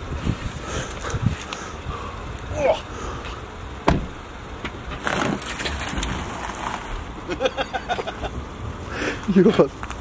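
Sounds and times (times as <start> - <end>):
tyres crunching over gravel: 0.3 - 10.0.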